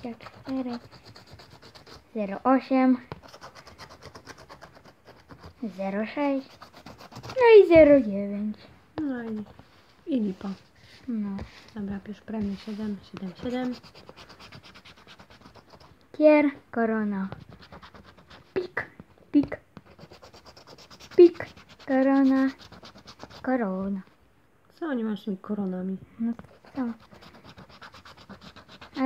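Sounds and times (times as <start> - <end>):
scratch card being scratched: 0.0 - 2.3, 3.1 - 8.0, 12.3 - 16.0, 17.2 - 18.9, 19.8 - 23.6, 26.4 - 29.0.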